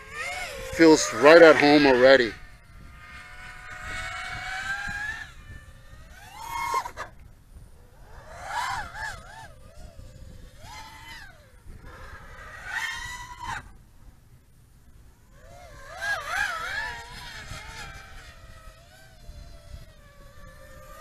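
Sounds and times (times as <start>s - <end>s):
drone motors whining: 0.0s - 21.0s.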